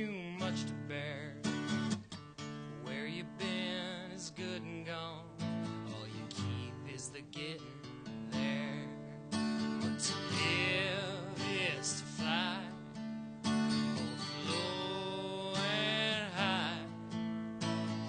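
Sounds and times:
acoustic guitar strummed: 0.0 - 18.0.

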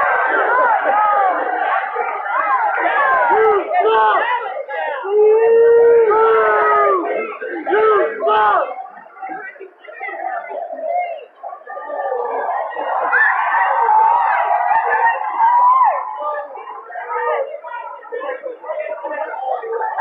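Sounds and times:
men yelling long shouts: 0.0 - 8.8
crowd chatter: 0.0 - 20.0.

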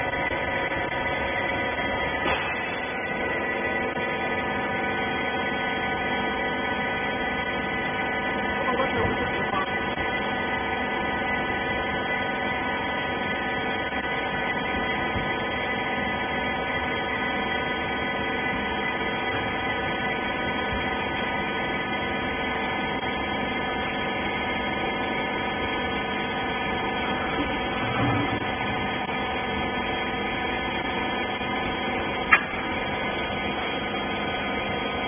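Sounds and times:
hydraulic pump motor humming: 0.0 - 35.0.

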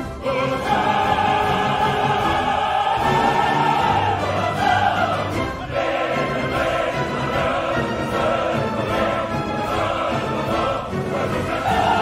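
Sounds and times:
opera chorus singing: 0.0 - 12.0
orchestra playing: 0.0 - 12.0.

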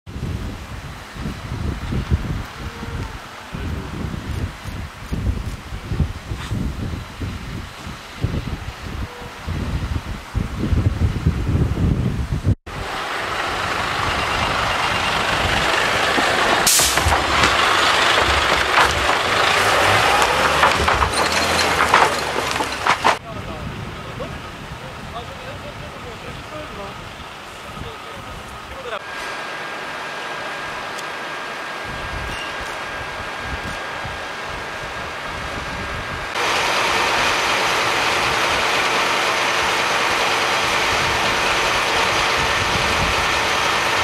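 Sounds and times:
fire engines running: 0.1 - 11.5, 12.7 - 44.0
loud hiss: 15.2 - 18.2
sharp knocks: 16.2 - 23.2.

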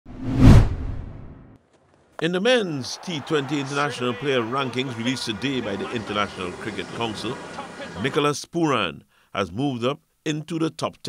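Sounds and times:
whoosh with low rumble: 0.1 - 1.4.

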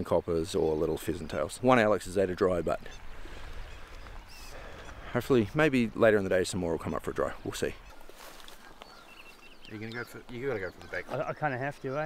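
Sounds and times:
creek hiss and rumble: 0.0 - 11.9.

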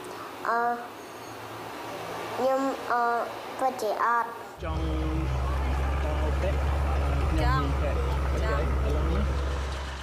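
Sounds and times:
low engine rumble: 4.6 - 10.0.

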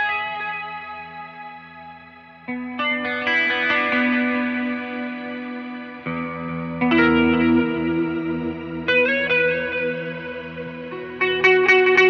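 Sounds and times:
electric guitar chords with reverb: 0.0 - 12.0.

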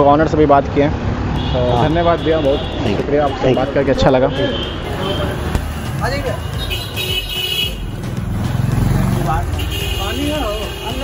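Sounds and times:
vehicle engine passing: 4.6 - 10.5.

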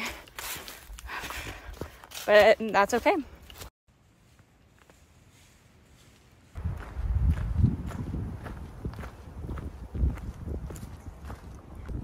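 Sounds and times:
person breathing: 0.0 - 2.1
footsteps on dry leaves: 0.0 - 11.5.

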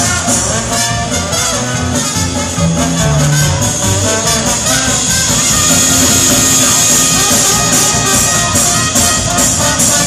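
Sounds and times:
swing jazz band playing: 0.0 - 10.0
trumpet and trombone melody: 0.0 - 10.0.

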